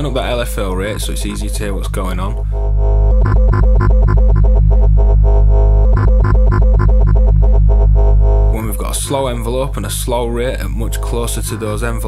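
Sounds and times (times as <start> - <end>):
pulsing synth drone: 0.0 - 12.0.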